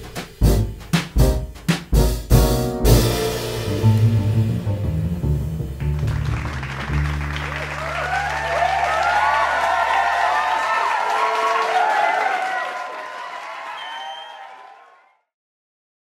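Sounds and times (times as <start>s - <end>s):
piano and double bass chord: 0.0s - 8.8s
applause with cheers: 5.8s - 15.3s.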